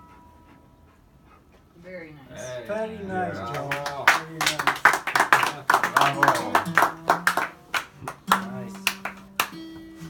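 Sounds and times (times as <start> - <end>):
man's voice: 5.5 - 6.9.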